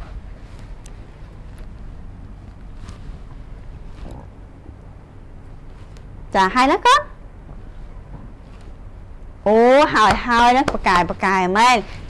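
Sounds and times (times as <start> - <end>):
faint rustle: 0.0 - 6.3, 7.4 - 9.0
low background rumble: 0.0 - 12.0.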